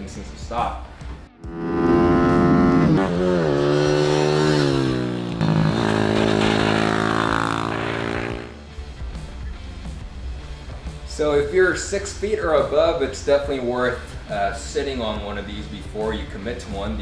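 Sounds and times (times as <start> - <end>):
background music: 0.0 - 17.0
mini bike engine revving: 1.5 - 8.5.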